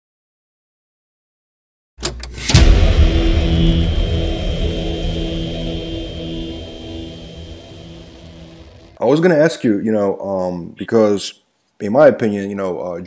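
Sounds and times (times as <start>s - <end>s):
sudden hit: 2.0s - 9.0s
deep engine-like rumble: 2.4s - 9.0s.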